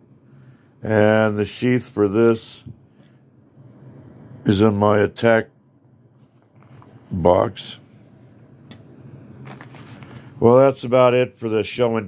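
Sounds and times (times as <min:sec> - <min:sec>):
rustling on a cloth-covered table: 0:09.2 - 0:10.3.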